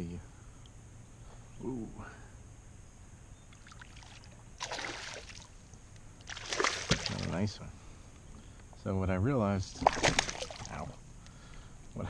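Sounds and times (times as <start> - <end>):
fish splashing at water surface: 3.6 - 5.6, 6.2 - 7.3, 9.8 - 10.9.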